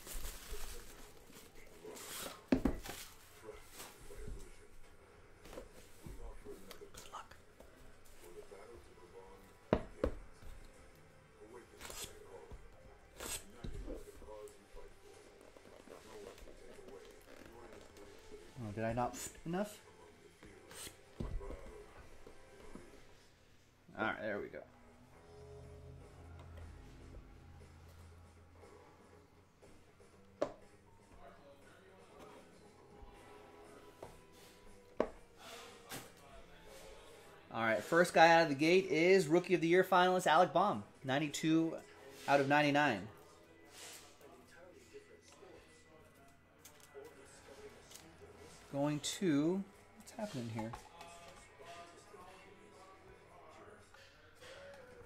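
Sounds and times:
faint background music: 0:00.0 - 0:55.0.

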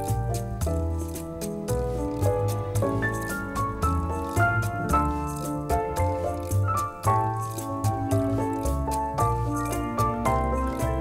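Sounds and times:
instrumental music with light beat: 0:00.0 - 0:11.0.

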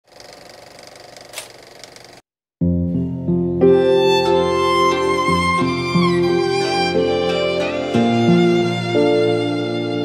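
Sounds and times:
film projector clatter: 0:00.0 - 0:02.2.

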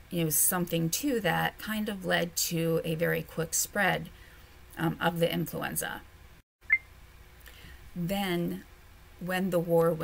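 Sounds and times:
short high beep: 0:06.6 - 0:06.9.

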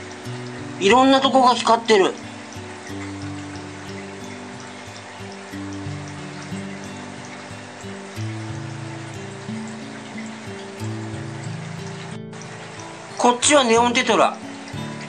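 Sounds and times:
slow low-note background music: 0:00.0 - 0:15.0
water trickling: 0:00.0 - 0:15.0.

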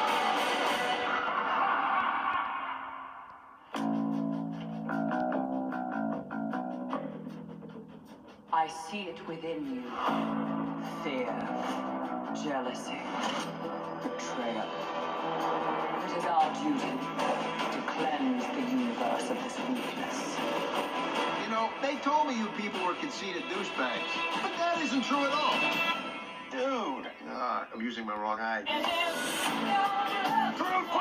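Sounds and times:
plucked guitar music: 0:03.7 - 0:08.2
dialogue: 0:07.0 - 0:29.1.

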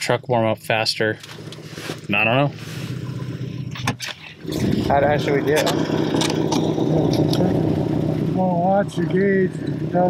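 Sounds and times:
pickup truck engine idling: 0:00.0 - 0:10.0.

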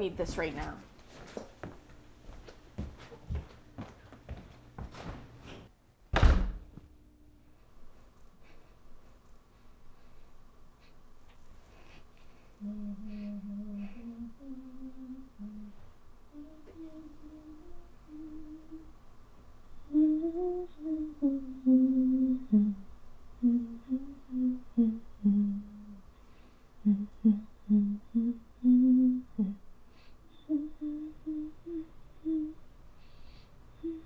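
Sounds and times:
woman humming a tune: 0:12.6 - 0:19.0, 0:19.8 - 0:26.1, 0:26.8 - 0:29.6, 0:30.3 - 0:32.7, 0:33.8 - 0:34.0.

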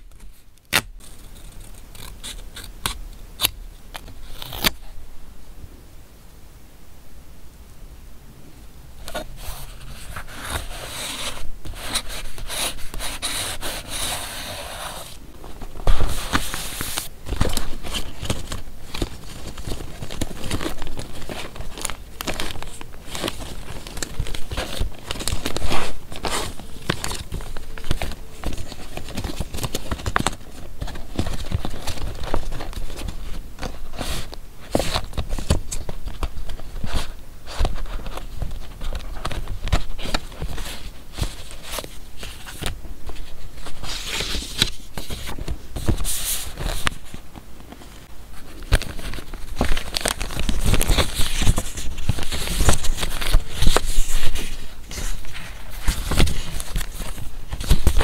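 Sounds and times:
paper cards shuffled by hand: 0:09.1 - 0:58.0.

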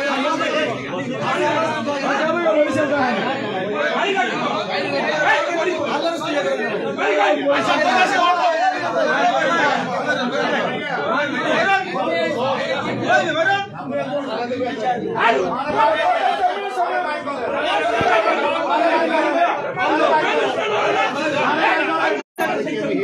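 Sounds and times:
overlapping chatter of people: 0:00.0 - 0:23.0.

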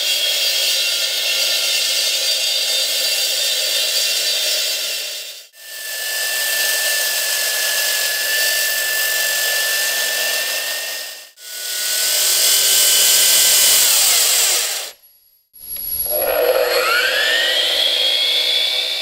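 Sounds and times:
concrete saw cutting concrete: 0:00.0 - 0:15.0, 0:15.9 - 0:19.0
steady high whine: 0:05.6 - 0:19.0.

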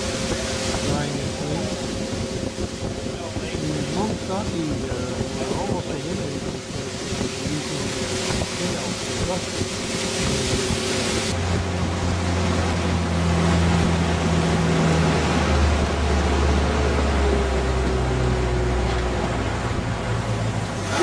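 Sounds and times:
boat engine running: 0:00.0 - 0:21.0
water and wind rushing: 0:00.0 - 0:21.0.

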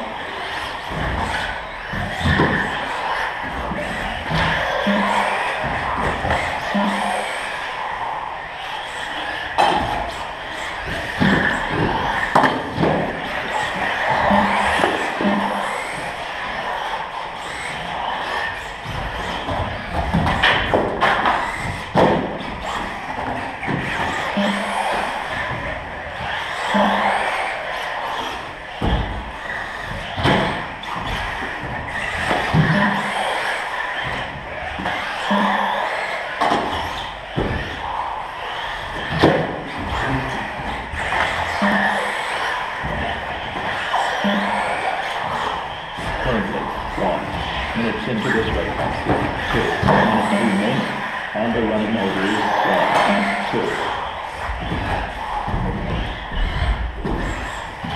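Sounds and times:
radio-controlled cars running: 0:00.0 - 0:57.9.

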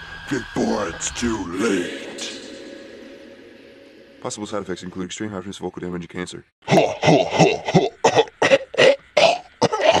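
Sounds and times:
man coughing: 0:06.7 - 0:10.0.

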